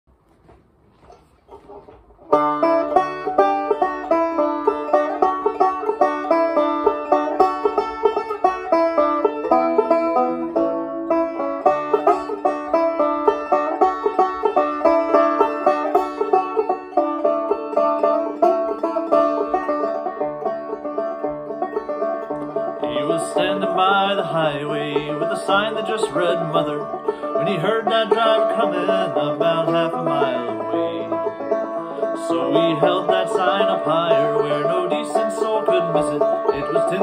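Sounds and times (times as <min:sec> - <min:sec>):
resonator banjo picking: 0:01.0 - 0:37.0.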